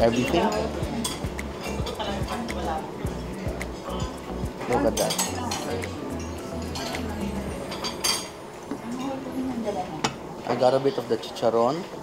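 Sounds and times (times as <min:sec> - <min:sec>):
background music with steady beat: 0:00.0 - 0:08.5.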